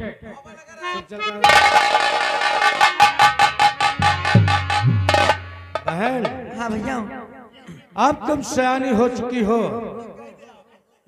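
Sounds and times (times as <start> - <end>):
fast drum strokes: 1.4 - 7.1.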